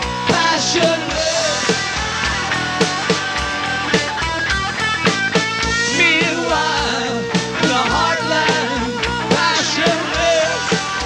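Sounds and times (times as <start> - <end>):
bass: 0.0 - 11.0
electric guitars: 0.0 - 11.0
keyboards: 0.0 - 11.0
steady drumbeat: 0.0 - 11.0.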